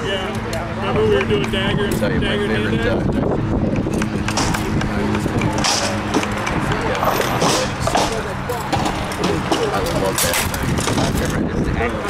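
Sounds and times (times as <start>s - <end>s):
people talking: 0.0s - 12.0s
wind on microphone: 0.8s - 7.9s, 9.7s - 12.0s
sharp knocks: 3.8s - 11.2s.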